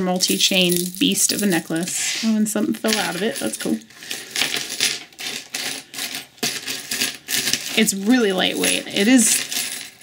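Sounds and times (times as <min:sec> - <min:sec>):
metal necklace chains clinking: 0:00.0 - 0:10.0.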